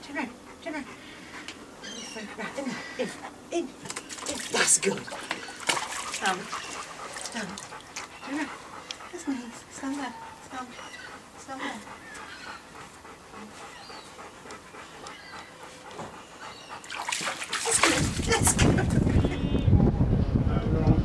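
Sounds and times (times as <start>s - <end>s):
dog panting: 0.0s - 18.3s
water splashing: 3.8s - 8.1s, 16.8s - 19.2s.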